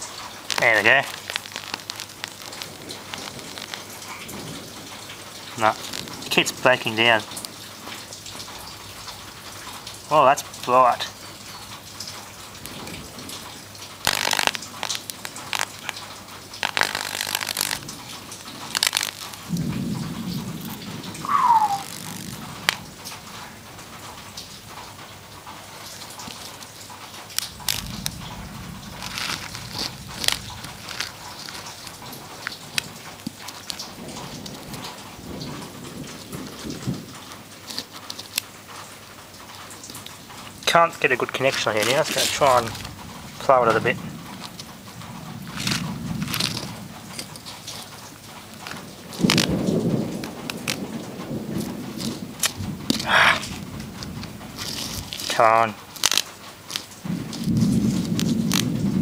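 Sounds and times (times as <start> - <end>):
electric arc crackling and sizzling: 0.0 - 9.4, 11.8 - 23.3, 26.2 - 38.8, 39.6 - 59.0
short falling squeal: 21.2 - 22.1.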